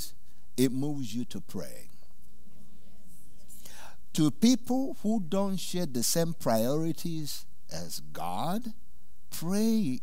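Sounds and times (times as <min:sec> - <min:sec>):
faint hiss: 0:00.0 - 0:10.0
low electrical hum: 0:00.0 - 0:10.0.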